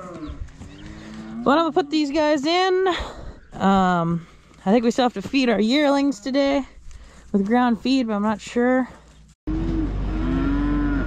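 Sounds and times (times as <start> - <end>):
cow mooing: 0.0 - 1.7, 9.5 - 11.0.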